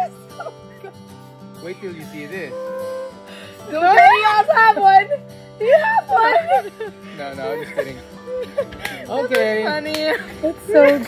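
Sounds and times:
acoustic guitar music: 0:00.0 - 0:11.0
excited voices shouting and laughing: 0:03.7 - 0:11.0.

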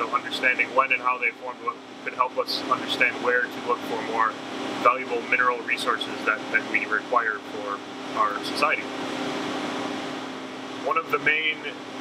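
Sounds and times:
machinery hum and hiss: 0:00.0 - 0:12.0.

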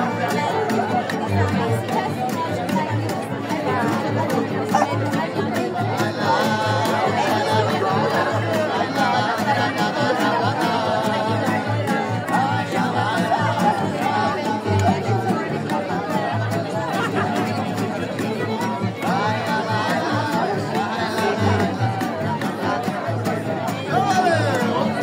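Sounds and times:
acoustic guitar playing: 0:00.0 - 0:25.0
people chatting: 0:00.0 - 0:25.0.

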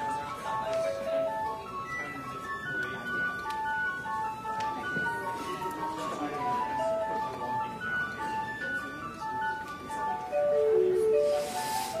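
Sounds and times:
church organ playing: 0:00.0 - 0:11.9.

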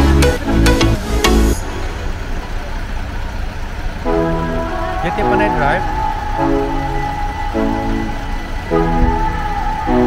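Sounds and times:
bus engine rumbling: 0:00.0 - 0:10.0.

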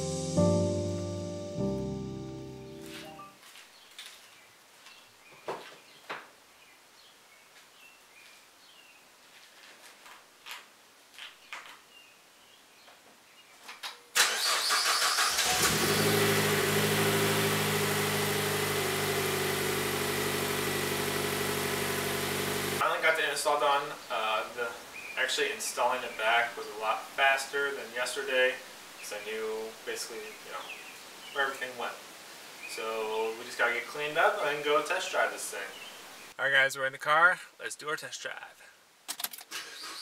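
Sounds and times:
music: 0:00.0 - 0:03.4
car engine cranking and idling: 0:14.2 - 0:22.8.

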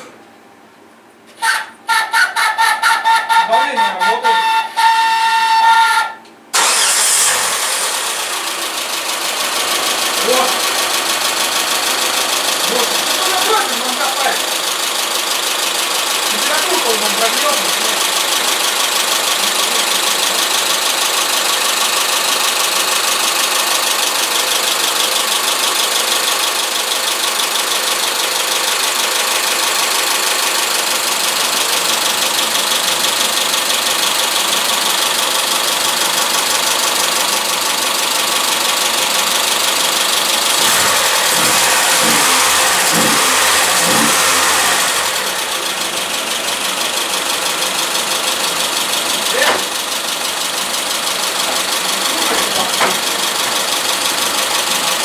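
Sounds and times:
car engine idling: 0:06.5 - 0:55.0.

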